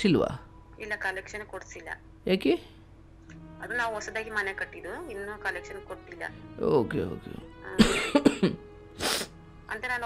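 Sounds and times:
faint background music: 0.0 - 10.0
person coughing: 7.8 - 9.3
throat clearing: 7.8 - 9.3.

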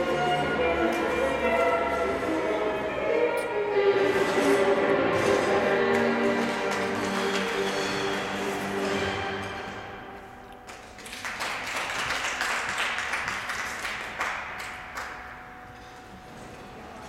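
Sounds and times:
audience applause: 5.8 - 8.8, 10.7 - 15.3.

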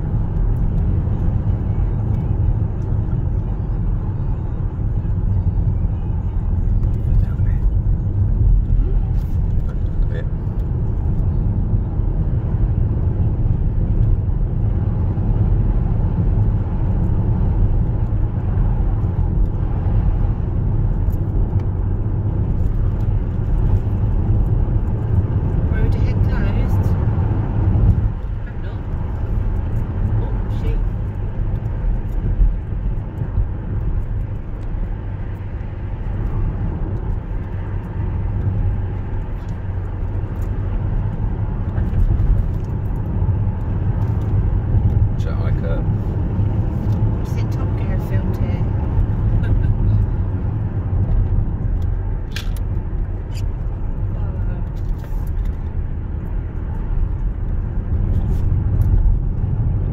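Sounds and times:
car engine and tyres rumbling: 0.0 - 59.9.

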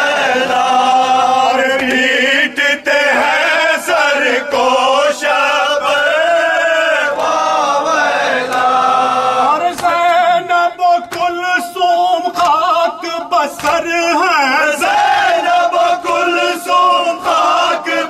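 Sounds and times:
men chanting together: 0.0 - 18.0
lead voice on a microphone: 8.4 - 18.0.

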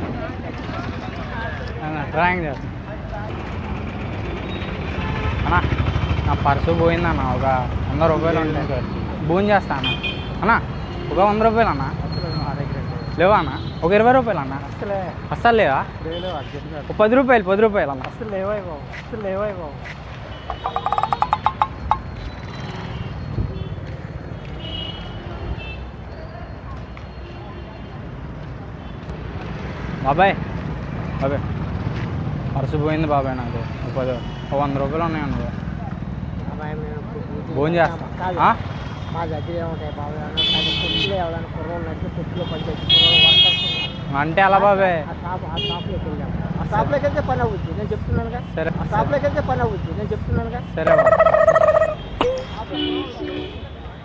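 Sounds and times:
traffic engine rumble: 0.0 - 54.0.

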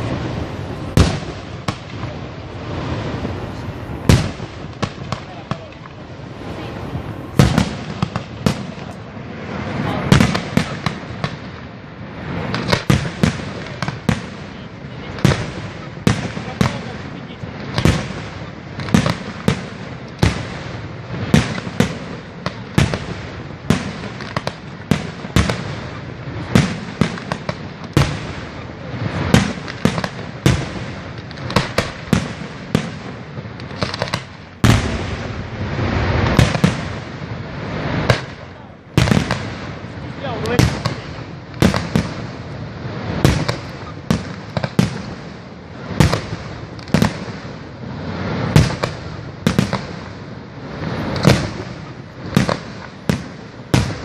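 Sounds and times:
fireworks bursting with echo: 0.0 - 54.0.

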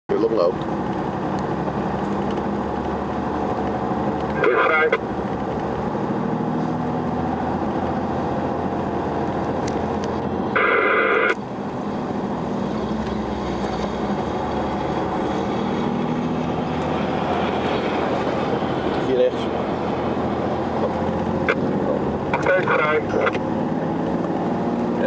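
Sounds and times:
car engine and tyres droning: 0.1 - 25.0.

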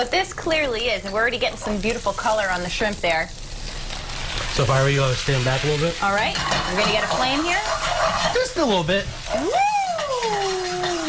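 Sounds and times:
flambe hissing and sizzling: 0.0 - 11.0
person shouting woo: 9.3 - 11.0.

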